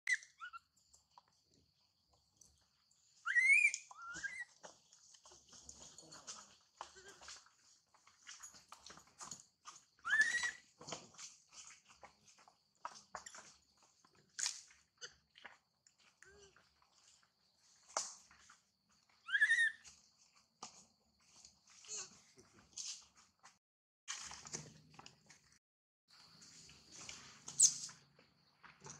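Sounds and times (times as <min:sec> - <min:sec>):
baby monkey crying in shrill squeals: 0:00.1 - 0:00.7, 0:03.2 - 0:04.6, 0:10.0 - 0:10.7, 0:19.2 - 0:19.8
soft squeaks: 0:00.1 - 0:00.7, 0:03.2 - 0:07.6, 0:10.0 - 0:10.8, 0:19.2 - 0:19.9, 0:21.8 - 0:22.3, 0:27.4 - 0:28.1.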